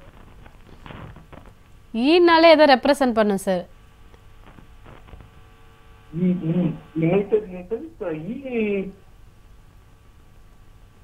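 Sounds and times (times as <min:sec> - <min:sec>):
mains hum on telephone line: 0:00.0 - 0:11.0
person speaking: 0:06.1 - 0:09.0.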